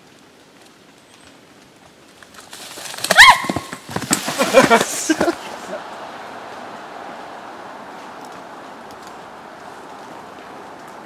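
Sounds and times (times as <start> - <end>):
feet scuffling in dry leaves: 2.4 - 11.0
woman screaming: 3.1 - 3.7.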